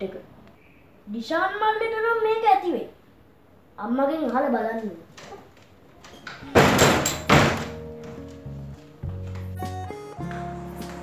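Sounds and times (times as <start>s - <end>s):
knocks on wooden cupboard door: 6.5s - 7.8s.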